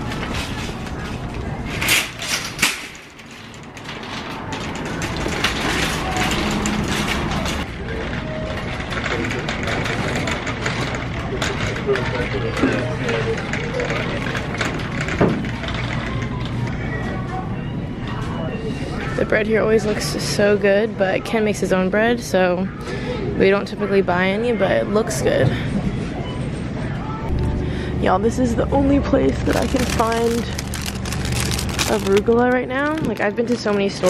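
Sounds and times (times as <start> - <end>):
shopping cart rolling and rattling: 0.0 - 16.5, 28.8 - 34.0
shoppers chatter: 0.0 - 34.0
in-store music: 26.1 - 34.0.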